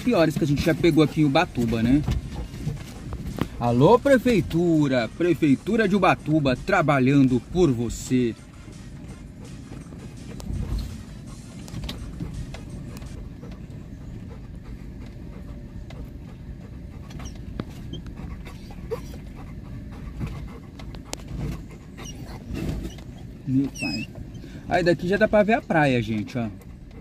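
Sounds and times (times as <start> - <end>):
knocks and rattles from bumps: 0.0 - 7.2, 16.9 - 24.4
car cabin low rumble: 0.0 - 27.0.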